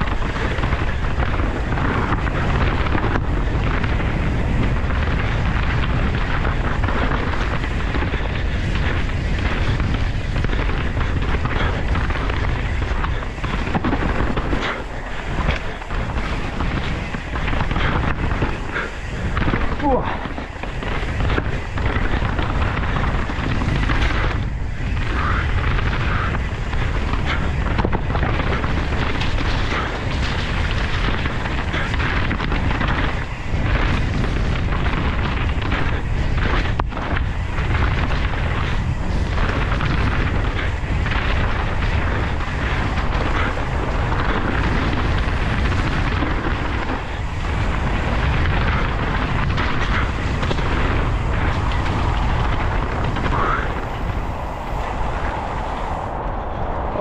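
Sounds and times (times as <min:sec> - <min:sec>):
bike knocking and rattling: 0:00.0 - 0:56.1
bike tyre noise: 0:00.0 - 0:57.0
wind buffeting microphone: 0:00.0 - 0:57.0.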